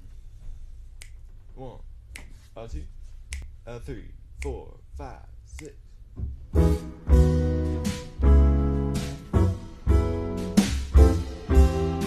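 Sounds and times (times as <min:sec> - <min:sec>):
finger snaps: 0:00.9 - 0:01.4, 0:02.1 - 0:02.6, 0:03.2 - 0:03.6, 0:04.4 - 0:04.6, 0:05.5 - 0:05.8
person speaking: 0:01.5 - 0:06.0.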